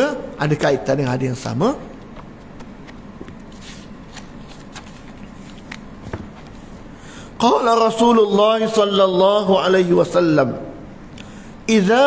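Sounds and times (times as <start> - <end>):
book pages flicking: 2.1 - 6.2.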